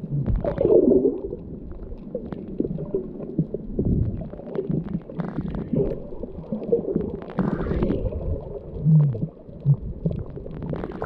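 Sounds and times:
underwater rumble and sloshing: 0:00.0 - 0:11.0.

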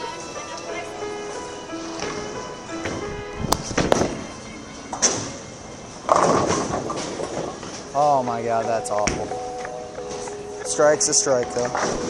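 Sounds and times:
background music: 0:00.0 - 0:12.0
bowling pins crashing: 0:06.0 - 0:07.9.

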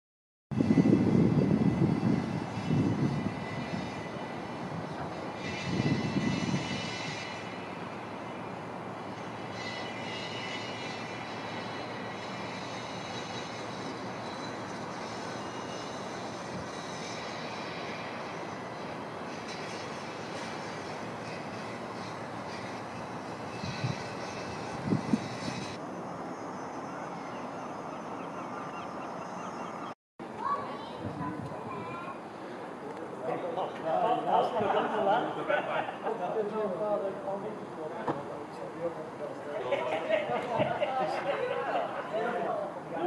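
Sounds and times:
rushing outdoor noise: 0:00.5 - 0:43.0.

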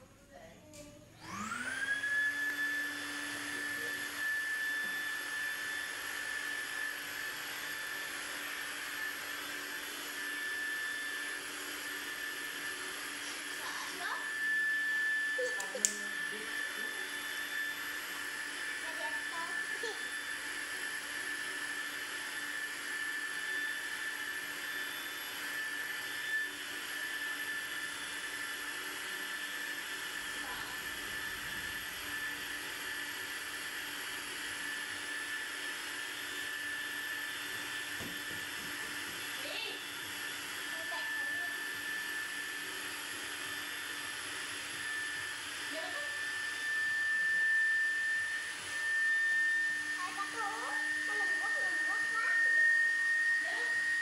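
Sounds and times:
electric air pump whining: 0:00.0 - 0:54.0.

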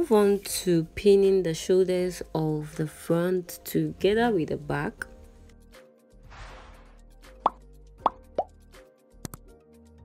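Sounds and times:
soft background music: 0:00.0 - 0:10.0
whoosh: 0:06.3 - 0:07.1.

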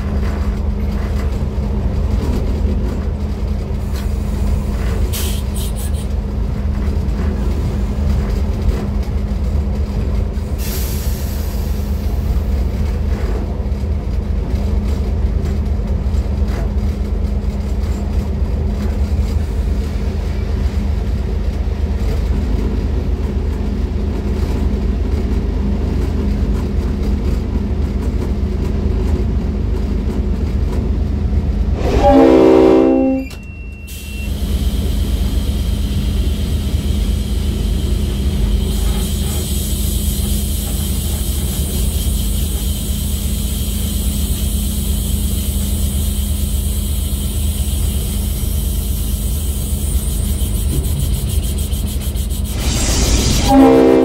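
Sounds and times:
diesel locomotive drone: 0:00.0 - 0:54.0
locomotive horn: 0:31.8 - 0:33.4, 0:52.8 - 0:54.0.

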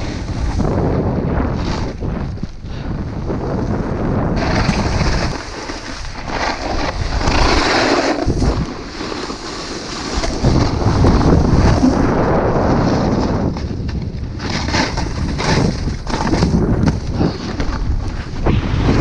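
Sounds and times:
snowboard scraping packed snow: 0:00.0 - 0:02.5, 0:03.2 - 0:19.0
wind rushing over microphone: 0:00.0 - 0:19.0.

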